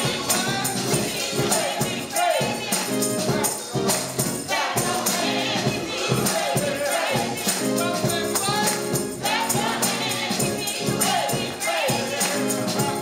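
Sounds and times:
gospel singing: 0:00.0 - 0:13.0
organ: 0:00.0 - 0:13.0
tambourine beat: 0:00.0 - 0:13.0.

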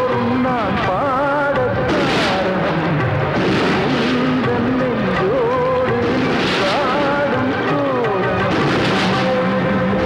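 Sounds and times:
film score held notes: 0:00.0 - 0:10.0
loud steady rushing noise: 0:01.8 - 0:07.8.

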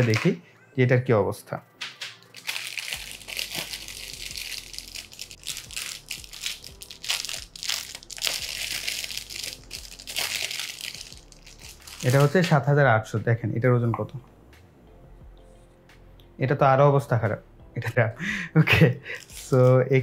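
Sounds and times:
plastic bag crinkling: 0:00.0 - 0:00.4, 0:02.2 - 0:12.7, 0:19.1 - 0:20.0.

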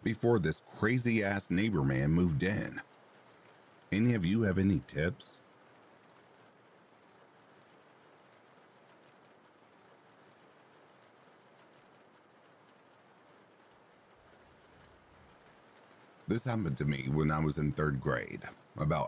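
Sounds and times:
faint steady rain: 0:00.0 - 0:19.0.

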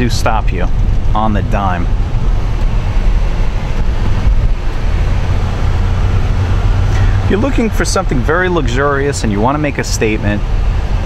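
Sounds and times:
car engine rumble inside cabin: 0:00.0 - 0:11.0
tyres on the road: 0:00.0 - 0:11.0.

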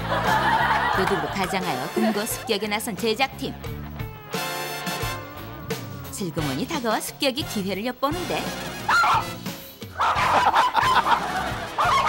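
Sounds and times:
small dogs yapping: 0:08.8 - 0:09.4, 0:10.0 - 0:11.2, 0:11.8 - 0:12.0.

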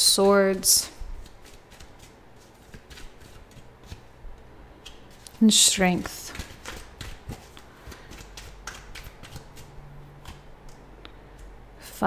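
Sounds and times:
cards shuffled by hand: 0:00.2 - 0:04.2, 0:06.0 - 0:10.8.

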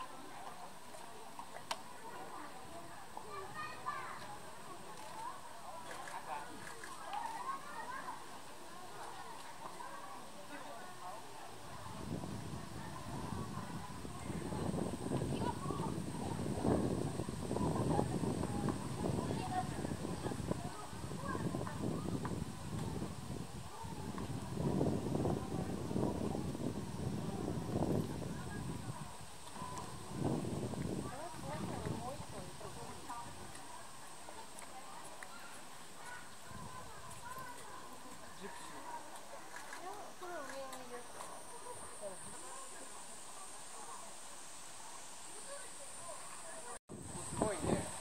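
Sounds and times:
crowd chatter: 0:00.0 - 0:48.0.

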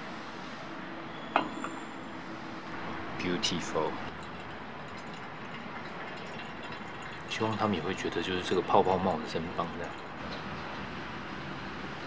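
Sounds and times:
water pouring onto coffee grounds: 0:03.2 - 0:10.2.

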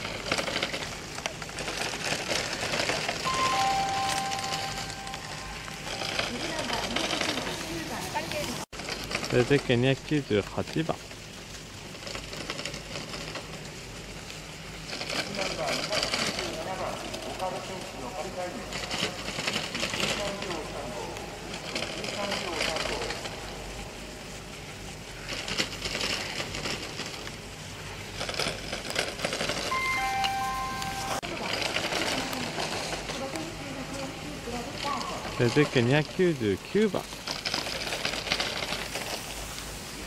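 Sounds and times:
short beeps: 0:03.2 - 0:06.2, 0:29.7 - 0:31.2
skis scraping on hard snow: 0:05.7 - 0:23.9, 0:24.6 - 0:40.0.

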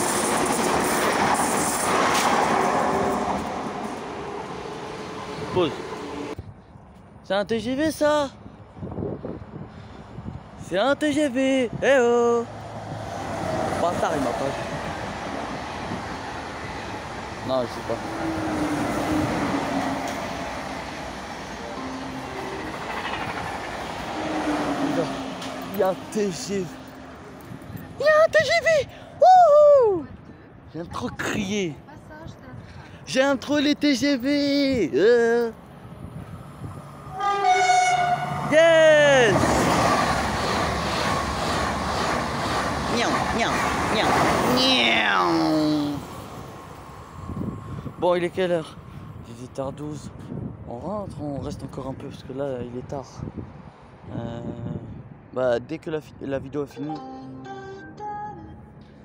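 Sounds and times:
high-speed train passing: 0:00.0 - 0:06.5, 0:07.7 - 0:29.6, 0:31.5 - 0:50.6
person shouting: 0:28.0 - 0:30.1.

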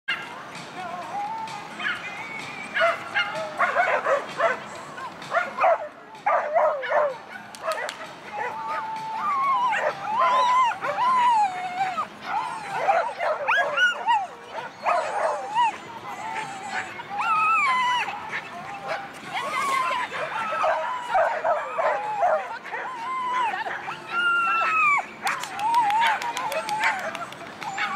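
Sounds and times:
dog barking in high yips: 0:05.3 - 0:08.6, 0:24.5 - 0:27.9.

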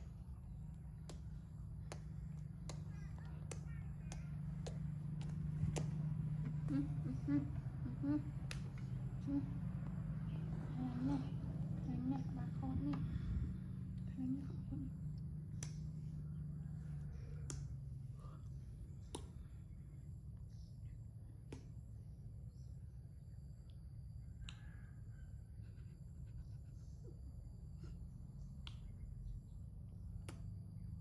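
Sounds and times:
steady low hum: 0:00.0 - 0:31.0
soft voice sounds: 0:06.5 - 0:08.5, 0:09.1 - 0:09.6, 0:10.2 - 0:15.2.

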